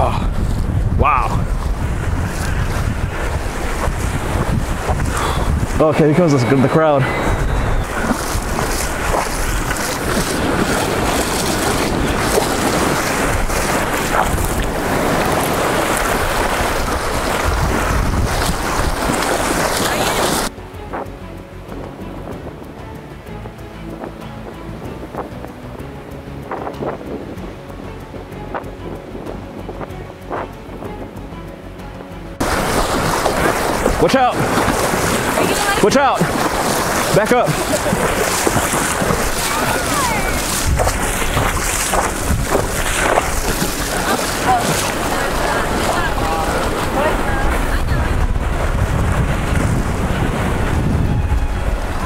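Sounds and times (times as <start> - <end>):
wind buffeting microphone: 0.0 - 31.5, 32.4 - 52.0
small surf waves: 1.4 - 21.0, 32.4 - 52.0
faint background music: 20.5 - 48.7.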